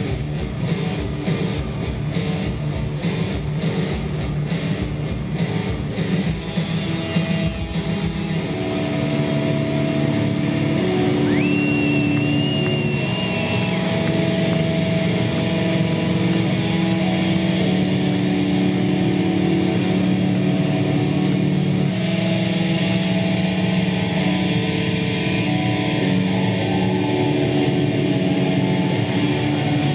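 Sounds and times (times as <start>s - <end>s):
high whine sliding up: 4.4s - 29.3s
distorted electric guitar chord: 13.2s - 26.6s.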